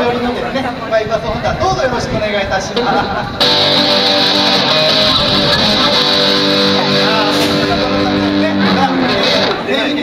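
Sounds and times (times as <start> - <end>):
electric guitar held chords: 3.4 - 9.8.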